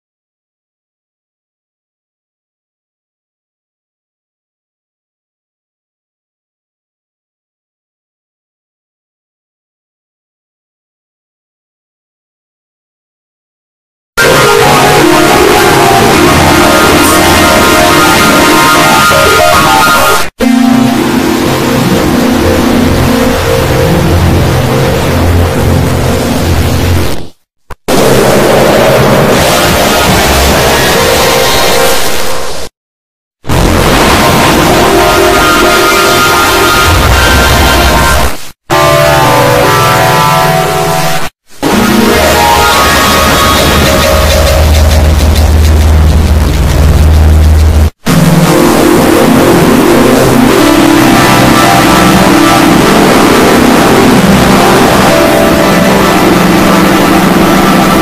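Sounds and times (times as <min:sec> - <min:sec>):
distorted noisy blare: 0:14.2 - 0:32.8, 0:33.4 - 0:58.0.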